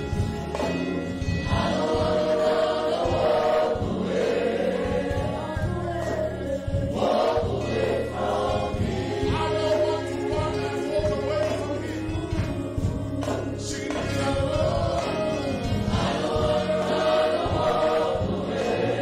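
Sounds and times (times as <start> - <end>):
congregation singing worship song: 0.0 - 19.0
instrumental accompaniment: 0.0 - 19.0.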